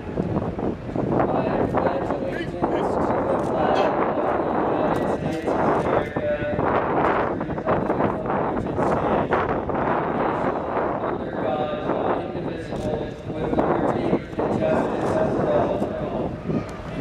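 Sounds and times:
person speaking over echoing loudspeakers: 0:01.2 - 0:06.6, 0:10.2 - 0:17.0.

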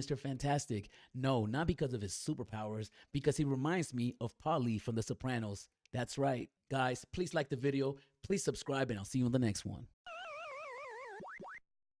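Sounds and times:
rising boing swoops: 0:10.1 - 0:11.6
warbling synthesized tone: 0:10.1 - 0:11.6.

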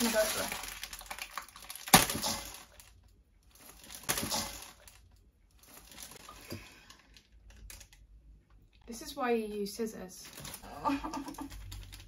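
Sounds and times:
plastic bag crinkling: 0:00.0 - 0:08.0, 0:10.2 - 0:12.0.

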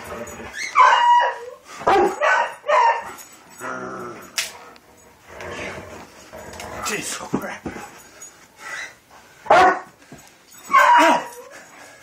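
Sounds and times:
dog barking: 0:00.8 - 0:03.1, 0:09.5 - 0:09.9.

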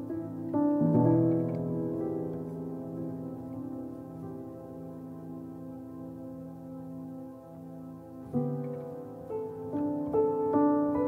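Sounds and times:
slow quiet piano chords: 0:00.0 - 0:11.0.

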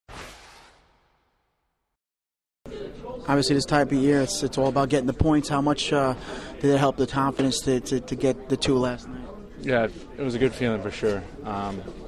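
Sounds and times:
whoosh sound effect: 0:00.1 - 0:01.4.

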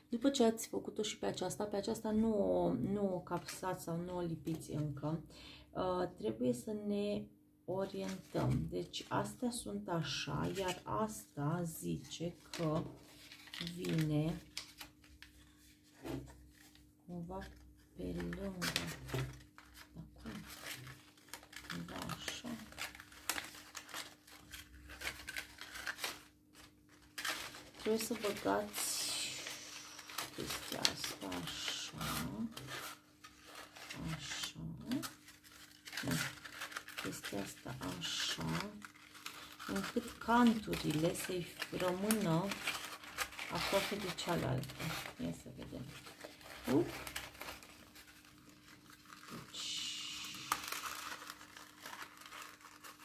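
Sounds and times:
paper rustling and crinkling: 0:12.0 - 0:53.0.

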